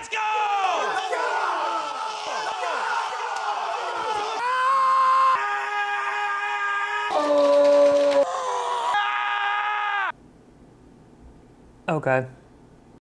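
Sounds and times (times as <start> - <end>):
person yelling long held notes: 6.4 - 10.1.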